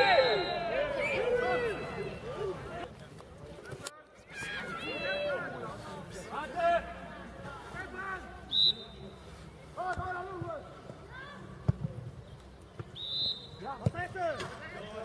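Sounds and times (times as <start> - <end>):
referee's whistle blasts: 0.0 - 1.0, 8.5 - 9.0, 13.0 - 13.7
players shouting: 0.0 - 2.9.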